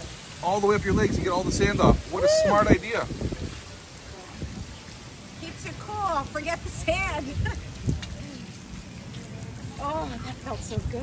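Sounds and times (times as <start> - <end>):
water spraying hiss: 0.0 - 11.0.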